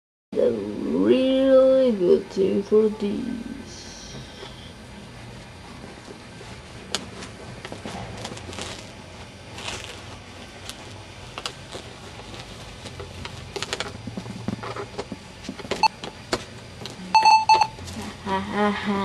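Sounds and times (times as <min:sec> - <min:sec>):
short electronic beeps: 0:17.1 - 0:17.8.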